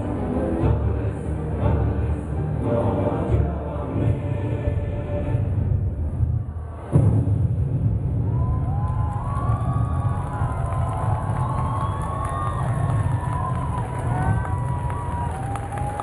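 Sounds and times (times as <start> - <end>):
steady low rumble: 0.0 - 16.0
audience cheering and shouting: 8.2 - 16.0.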